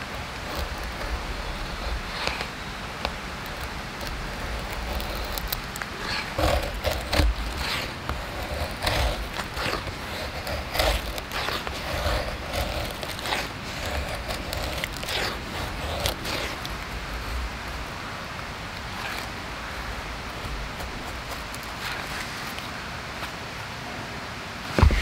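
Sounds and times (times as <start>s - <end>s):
knife scraping wooden stick: 0.0s - 17.9s, 18.8s - 22.7s
faint steady hiss: 0.0s - 25.0s.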